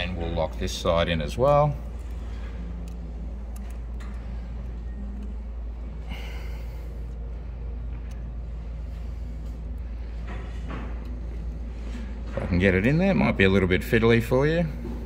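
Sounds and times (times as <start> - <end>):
low background hum: 0.0 - 15.0.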